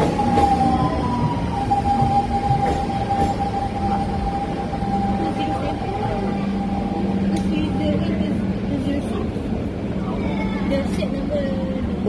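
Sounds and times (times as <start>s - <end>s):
train wheels rumbling on rail: 0.0s - 12.0s.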